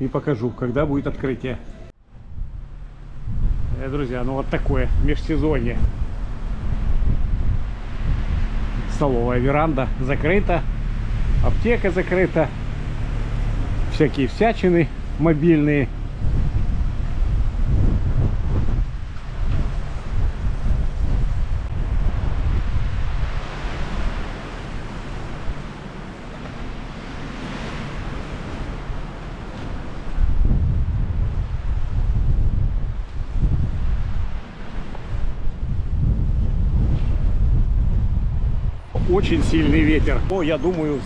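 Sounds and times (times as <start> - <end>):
gusty wind buffeting microphone: 0.8 - 41.0.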